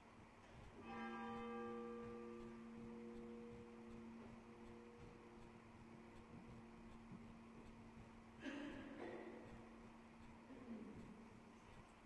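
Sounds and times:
church bell ringing: 0.8 - 5.4.

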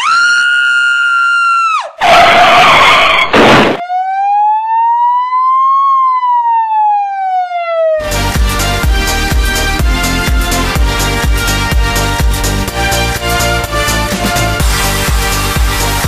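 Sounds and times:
siren wail: 0.0 - 8.1.

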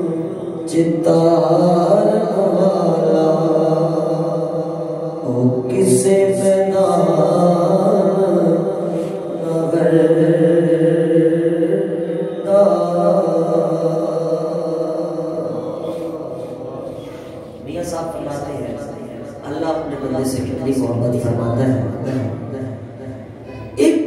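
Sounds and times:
man chanting into a microphone: 0.0 - 24.0.

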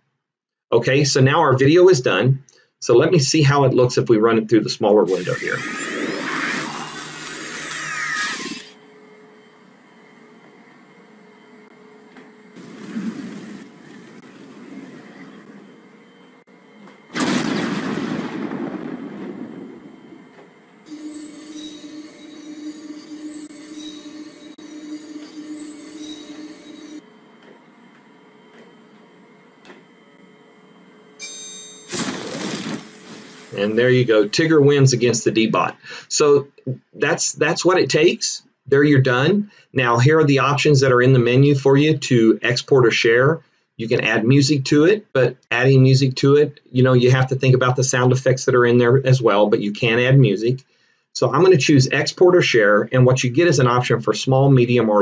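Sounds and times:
faint steady hum: 0.7 - 55.0
loud sudden effect bursts: 17.1 - 24.0, 31.9 - 35.2.

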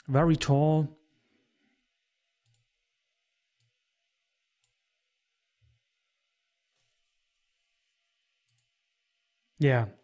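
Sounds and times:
faint computer mouse clicks: 2.4 - 2.7.

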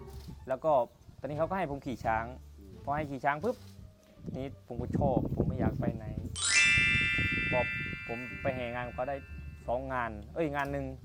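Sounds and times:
bright chime: 6.4 - 9.6.

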